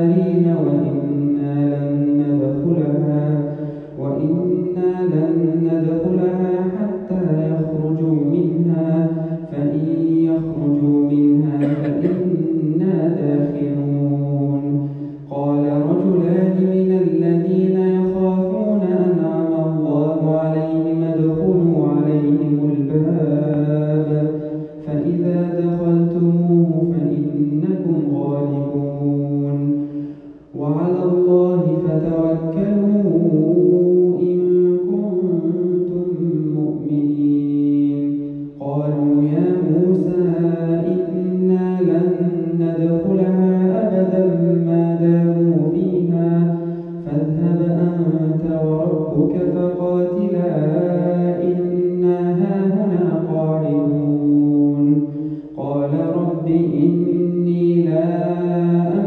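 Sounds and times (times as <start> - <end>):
man chanting melodically: 0.0 - 59.0.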